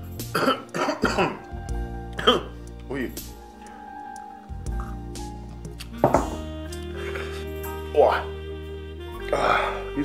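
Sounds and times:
background music: 0:00.0 - 0:10.0
glass set down on wooden table: 0:06.0 - 0:06.4.

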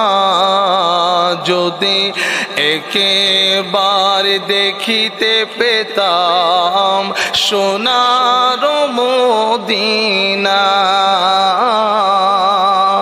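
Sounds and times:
man singing into a microphone: 0:00.0 - 0:13.0.

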